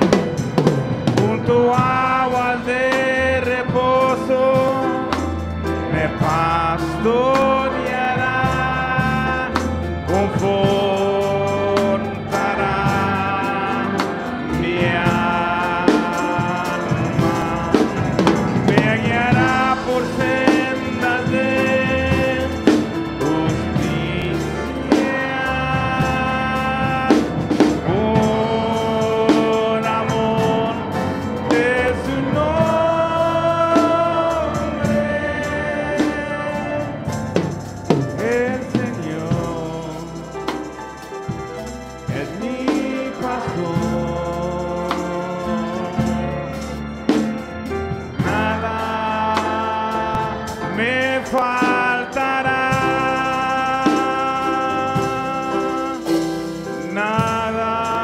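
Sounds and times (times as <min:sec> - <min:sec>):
drum hits: 0:00.0 - 0:44.2
band playing: 0:00.0 - 0:58.0
man singing into microphone: 0:00.0 - 0:58.0.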